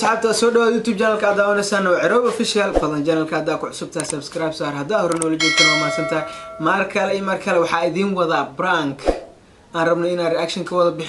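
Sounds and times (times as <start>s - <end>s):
bright bell ding: 5.4s - 7.1s.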